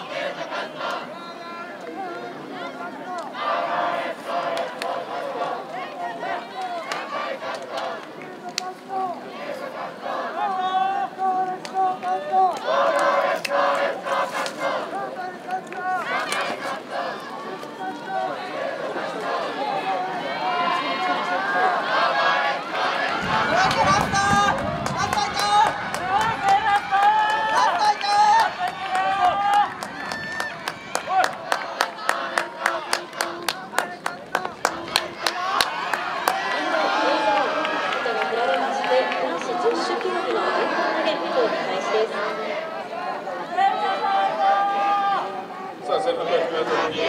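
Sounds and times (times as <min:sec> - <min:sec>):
crowd babble: 0:00.0 - 0:47.0
spectators shouting and cheering: 0:00.0 - 0:47.0.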